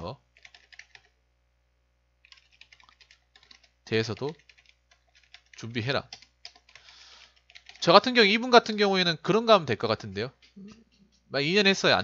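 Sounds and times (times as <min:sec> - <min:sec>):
computer keyboard typing: 0:00.4 - 0:01.2, 0:02.2 - 0:08.9.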